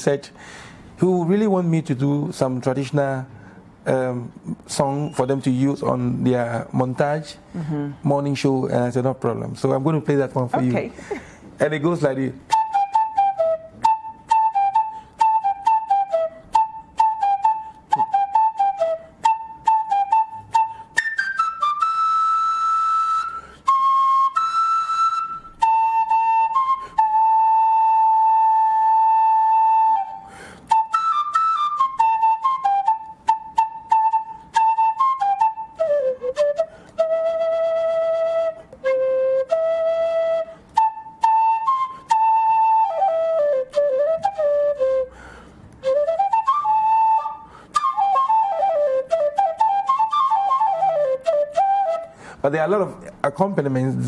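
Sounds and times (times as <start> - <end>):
wooden flute playing a tune: 4.4 - 6.0, 12.4 - 52.3.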